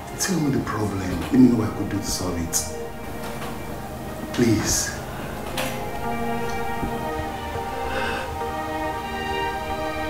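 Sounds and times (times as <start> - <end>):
film score sustained chords: 0.0 - 10.0.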